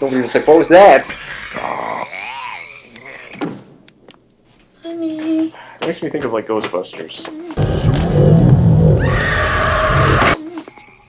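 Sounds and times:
monsters growling and warbling: 1.1 - 3.4, 7.6 - 10.4.

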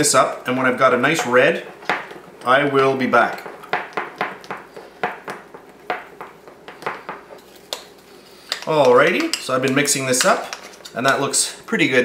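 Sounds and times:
utensil stirring icing in glass bowl: 0.4 - 11.4.

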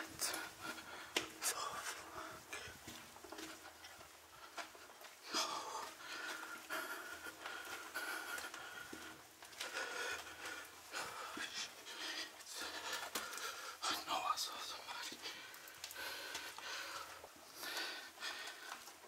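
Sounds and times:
scuffing footsteps: 0.0 - 13.6
person breathing hard: 0.0 - 14.2, 15.1 - 19.0.

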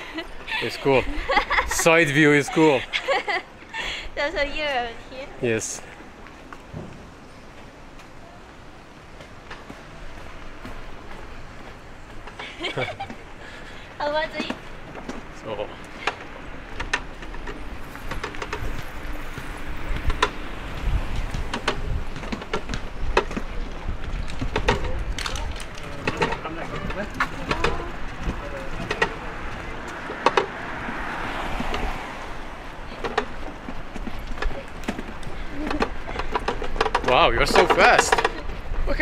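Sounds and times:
running footsteps: 5.6 - 39.0
rickshaw cart knocks and rattles: 16.0 - 39.0
wind rumble on microphone: 16.6 - 37.5.

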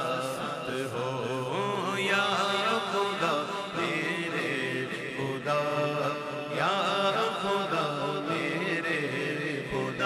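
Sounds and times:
man chanting melismatically: 0.0 - 10.0.

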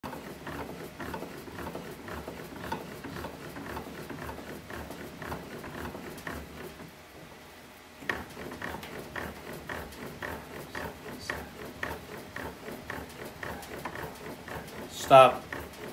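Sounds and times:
bat roller strokes: 0.0 - 7.3, 8.0 - 15.9.

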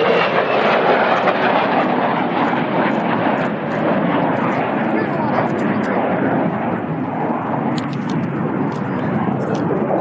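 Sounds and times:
jet engine roar: 0.0 - 10.0.

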